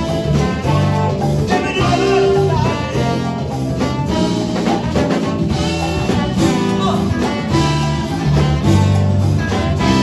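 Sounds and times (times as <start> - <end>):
funk band horn passage: 0.0 - 10.0.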